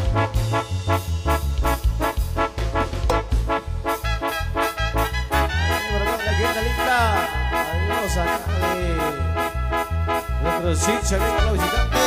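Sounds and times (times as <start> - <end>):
brass band oom-pah music: 0.0 - 12.0.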